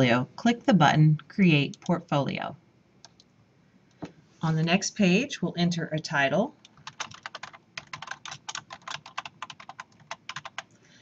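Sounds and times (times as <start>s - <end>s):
typing on computer keyboard: 6.6s - 10.8s.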